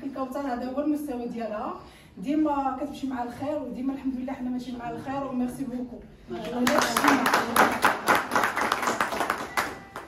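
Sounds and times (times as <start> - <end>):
people clapping: 6.4 - 10.0.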